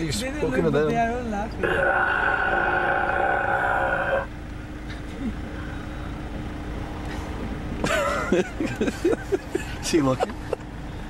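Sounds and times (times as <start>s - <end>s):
traffic: 0.0s - 11.0s
man groaning through megaphone: 1.6s - 4.3s.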